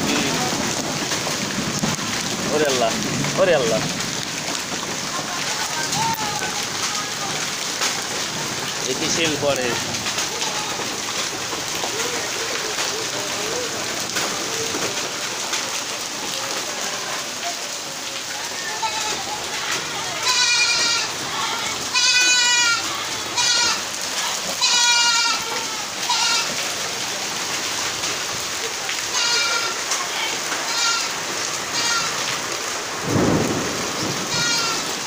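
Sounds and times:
rain and hail on concrete: 0:00.0 - 0:35.0.

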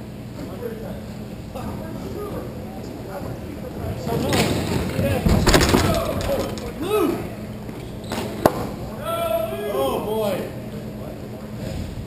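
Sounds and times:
clattering stick and ball impacts: 0:04.3 - 0:06.8
hockey players shouting: 0:05.7 - 0:07.5, 0:08.9 - 0:10.6.

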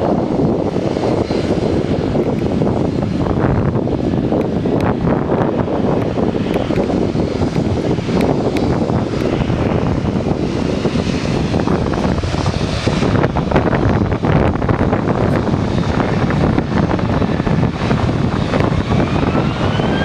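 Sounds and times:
jet engines rumbling: 0:00.0 - 0:20.0
wind buffeting microphone: 0:00.0 - 0:20.0.

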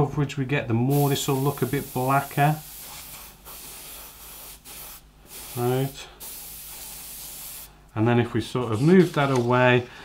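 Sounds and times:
airbrush spraying hiss: 0:00.9 - 0:07.8.

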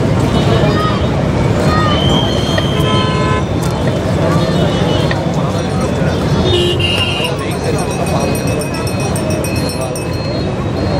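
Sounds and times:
crowd chatter: 0:00.0 - 0:10.9
road traffic noise: 0:00.0 - 0:10.9
vehicle horn: 0:02.6 - 0:03.5, 0:06.4 - 0:07.4.

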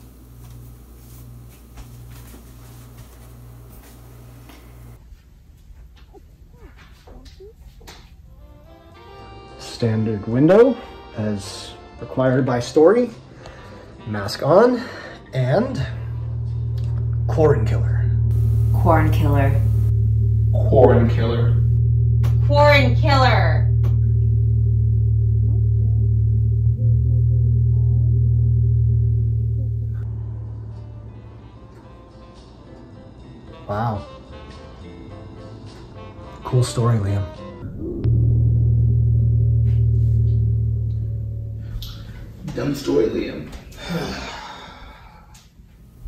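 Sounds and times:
low ominous drone: 0:15.5 - 0:31.7, 0:37.6 - 0:45.4
person sighing: 0:43.8 - 0:45.3.

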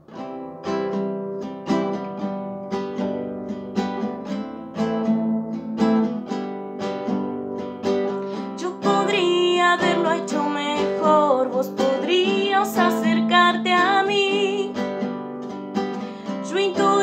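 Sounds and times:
classical guitar strumming chords: 0:00.0 - 0:17.0.

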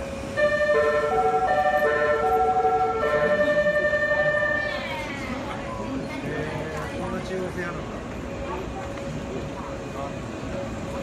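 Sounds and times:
electric train musical horn: 0:00.4 - 0:04.9.

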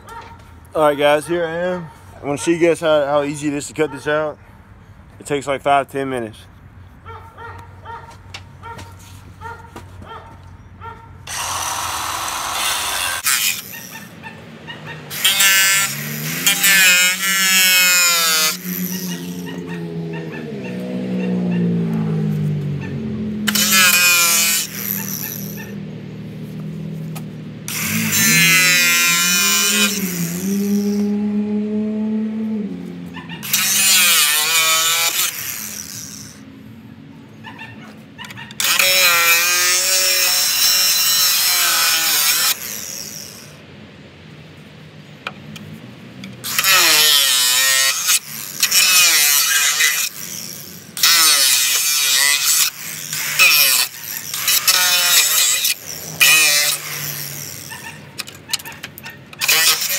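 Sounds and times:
angle grinder cutting metal: 0:11.3 - 0:14.3, 0:14.9 - 0:21.1, 0:23.5 - 0:25.8, 0:27.7 - 0:31.2, 0:33.4 - 0:36.5, 0:38.5 - 0:43.6, 0:46.4 - 0:59.9.

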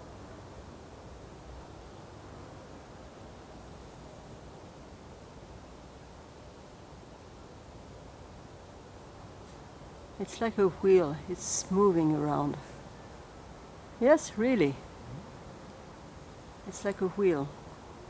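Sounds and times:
faint steady hiss: 0:00.0 - 0:18.0.

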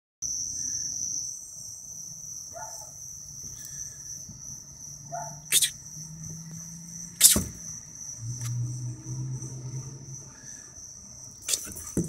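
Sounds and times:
crickets chirring: 0:00.2 - 0:12.0.

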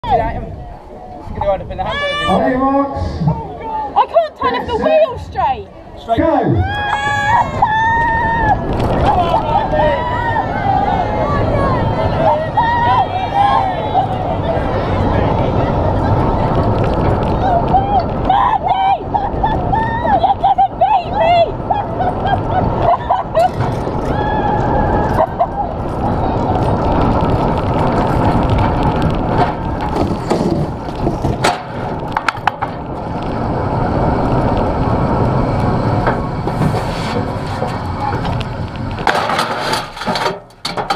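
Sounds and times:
spectators shouting and cheering: 0:00.0 - 0:39.2
wheels rattling on tarmac: 0:00.0 - 0:40.9
cart crashing: 0:22.8 - 0:33.1, 0:35.9 - 0:40.9.

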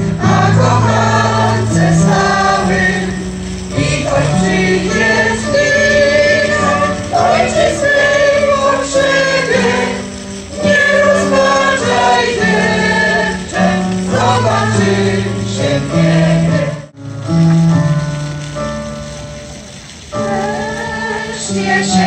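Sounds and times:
choir singing in unison: 0:00.0 - 0:17.0, 0:20.2 - 0:22.0
electronic keyboard sustained notes: 0:00.0 - 0:22.0.

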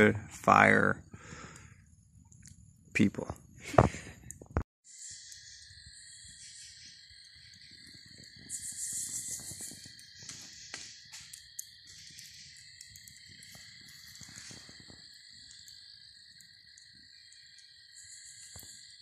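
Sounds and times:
night insects trilling: 0:00.0 - 0:04.2, 0:04.8 - 0:19.0
campfire hissing and popping: 0:00.0 - 0:19.0.

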